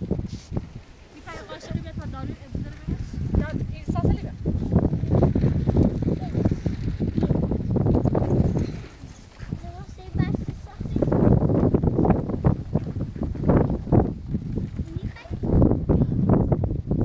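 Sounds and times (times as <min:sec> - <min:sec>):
microphone rumble: 0:00.0 - 0:17.0
footsteps on stony dirt: 0:07.3 - 0:14.9.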